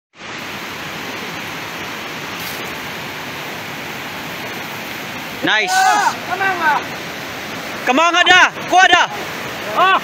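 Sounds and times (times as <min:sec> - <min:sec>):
river rushing in flood: 0:00.2 - 0:10.0.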